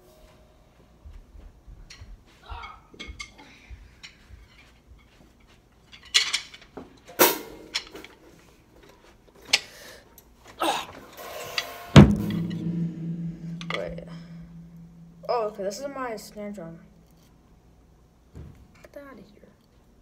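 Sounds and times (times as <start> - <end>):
clatter and knocks around drum kit: 12.0 - 15.3
loud ringing drum hit: 12.0 - 16.4.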